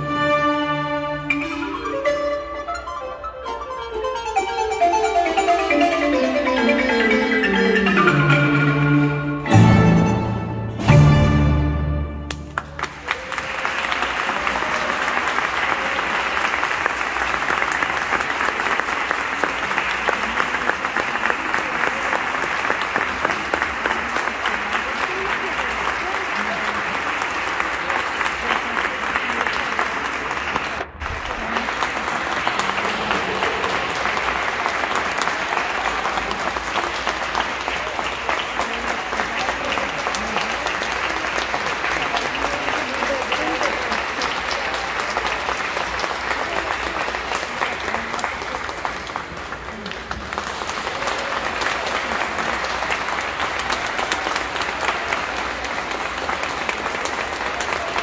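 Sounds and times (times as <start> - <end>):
audience applauding: 12.2 - 58.0.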